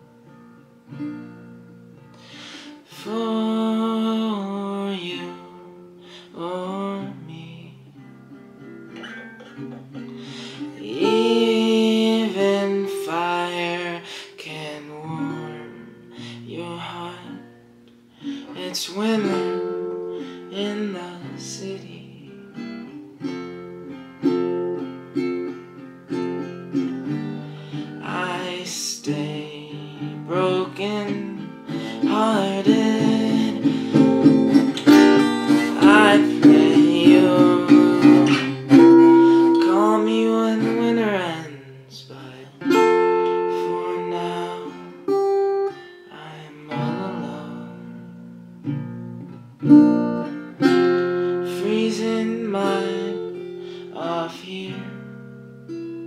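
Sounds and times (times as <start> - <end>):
acoustic guitar strummed and picked: 0.0 - 56.0
man singing: 2.4 - 8.0, 10.1 - 17.5, 18.2 - 22.4, 27.0 - 48.2, 50.6 - 55.2.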